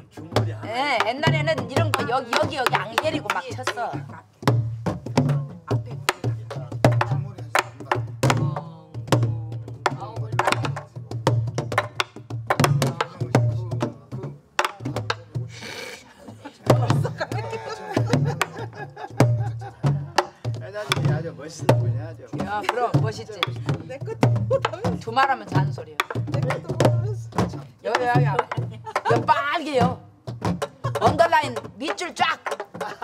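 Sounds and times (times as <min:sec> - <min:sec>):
barrel drum thuds: 0:00.0 - 0:15.5, 0:16.7 - 0:33.0.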